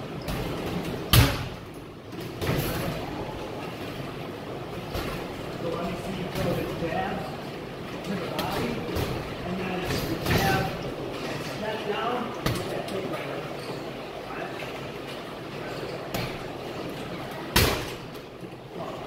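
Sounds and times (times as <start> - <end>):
strikes on a heavy punching bag: 1.1 - 1.6.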